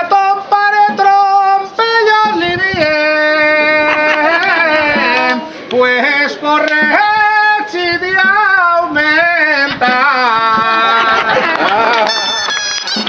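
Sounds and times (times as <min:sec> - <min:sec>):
shawm playing a melody: 0:00.0 - 0:13.0.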